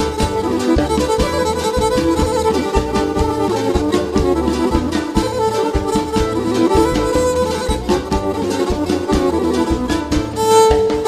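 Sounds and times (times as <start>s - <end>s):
bowed lyra melody: 0.0s - 11.0s
keyboard accompaniment: 0.0s - 11.0s
steady low beat: 0.0s - 11.0s.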